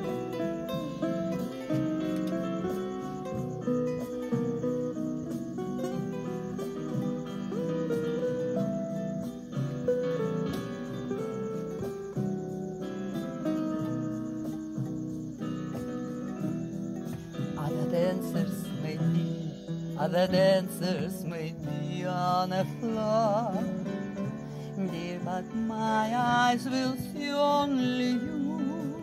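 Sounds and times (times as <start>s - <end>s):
acoustic guitar melody: 0.0s - 29.0s.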